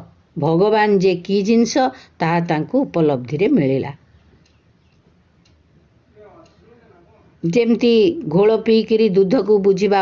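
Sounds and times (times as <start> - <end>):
soft ticking: 4.2 - 6.7.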